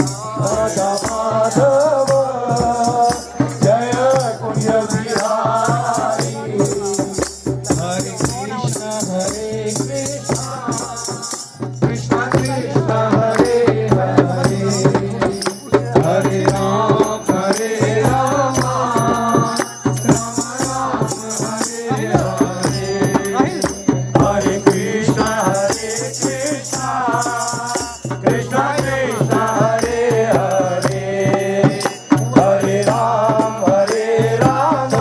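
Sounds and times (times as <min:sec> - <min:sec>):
group clapping in rhythm: 0:00.0 - 0:35.0
percussion strikes: 0:00.0 - 0:35.0
voices singing a chant: 0:00.0 - 0:35.0.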